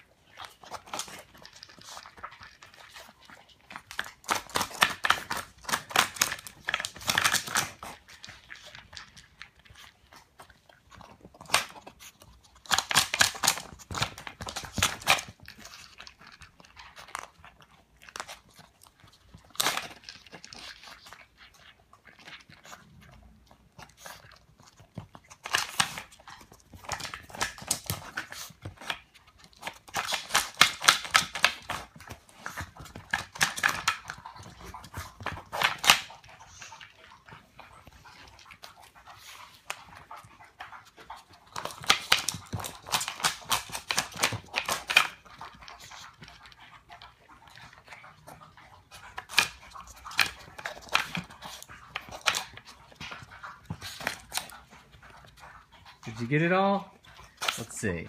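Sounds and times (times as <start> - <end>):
dog chewing food: 0.0 - 58.0
dog clicking wooden feeder pieces: 0.4 - 9.8, 10.4 - 22.8, 23.7 - 58.0.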